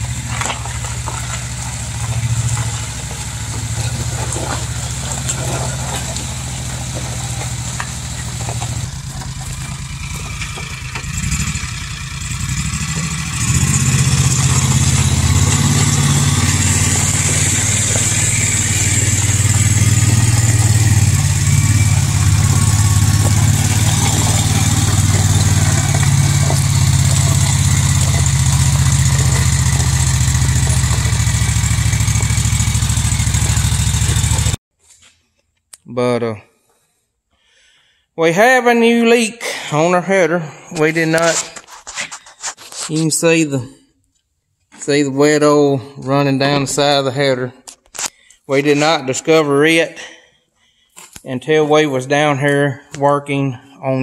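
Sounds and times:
trailer rolling over gravel: 0.0 - 34.6
vehicle engine running: 0.0 - 34.6.

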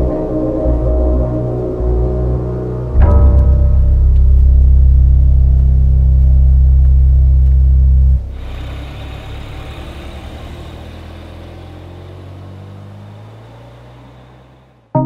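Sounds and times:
loud deep drone: 0.0 - 15.0
pickup truck driving away: 0.0 - 15.0.

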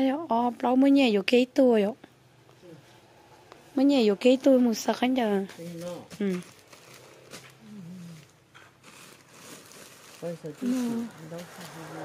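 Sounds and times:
plastic bag rustling: 5.6 - 12.0
person humming softly: 7.6 - 8.3.

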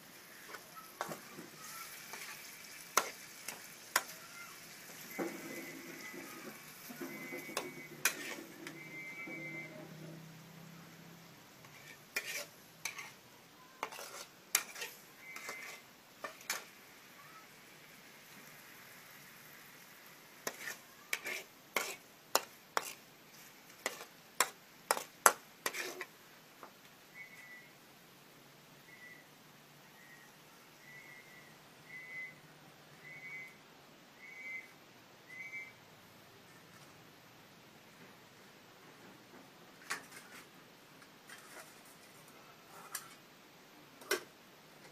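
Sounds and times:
faint sizzle: 0.0 - 44.9
metal spatula scraping wok: 0.2 - 10.2, 11.6 - 13.2, 13.8 - 16.8, 20.3 - 26.1, 39.8 - 40.6, 41.2 - 43.2.

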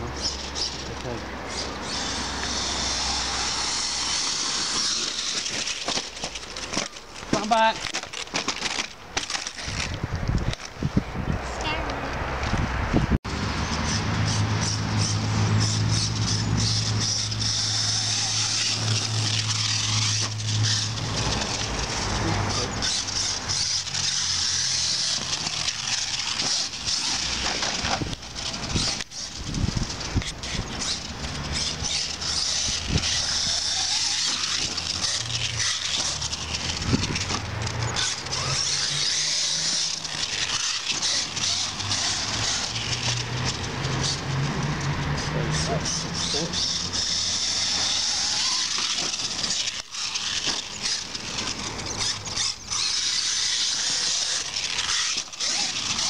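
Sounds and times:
electric motor whine: 1.5 - 6.6, 13.3 - 56.0.

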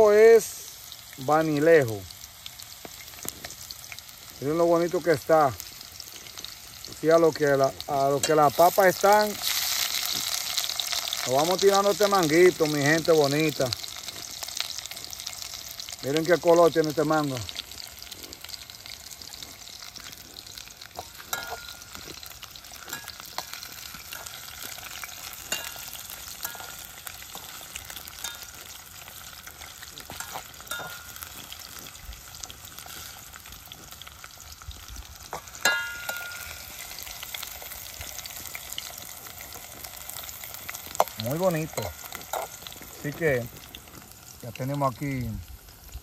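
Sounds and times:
potato wedges sizzling in oil: 0.0 - 46.0
knife clinking against pot: 21.3 - 21.8.

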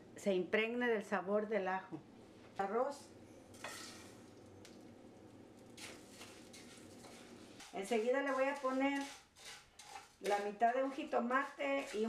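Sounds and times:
oil sizzling in a frying pan: 3.0 - 12.0
wooden spoon stirring rustles: 3.4 - 4.9, 5.5 - 12.0.

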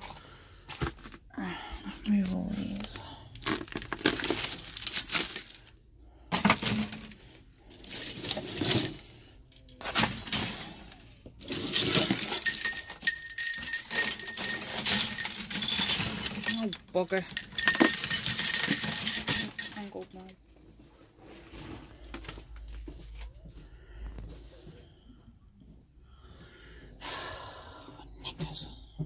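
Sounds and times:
metal ornaments clattering: 2.4 - 20.5.

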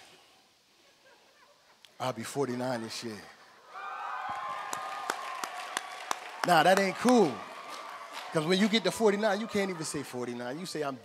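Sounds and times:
audience cheering: 3.7 - 11.0
person clapping: 4.3 - 8.4.

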